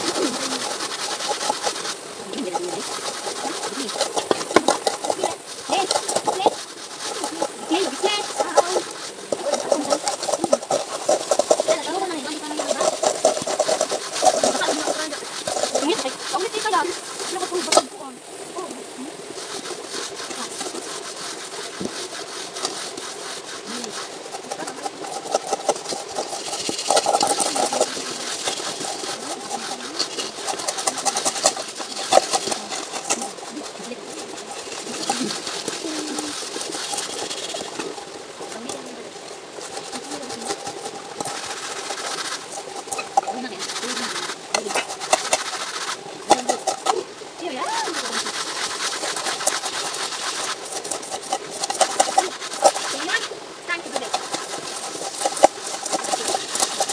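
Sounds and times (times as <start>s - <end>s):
voices talking: 0.0s - 0.8s, 2.0s - 19.3s, 23.6s - 48.6s
sand scraping aluminium pots: 0.0s - 56.9s.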